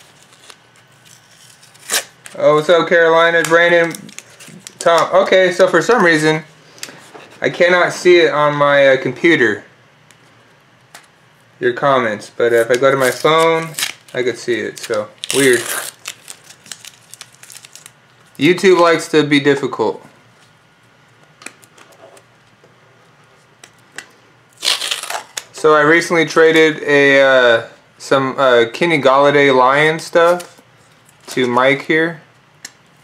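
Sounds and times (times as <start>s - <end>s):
bubble wrap crinkling: 0.0s - 2.4s, 3.3s - 5.0s, 12.6s - 18.4s, 24.6s - 25.5s
tape rustling: 0.0s - 2.4s, 3.2s - 5.2s, 12.5s - 18.9s
tape ripping: 0.1s - 2.4s, 12.6s - 17.9s, 24.6s - 25.5s.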